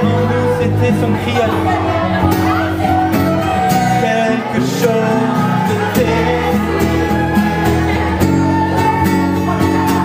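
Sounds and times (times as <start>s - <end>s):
acoustic guitar strumming chords: 0.0s - 10.0s
live band music: 0.0s - 10.0s.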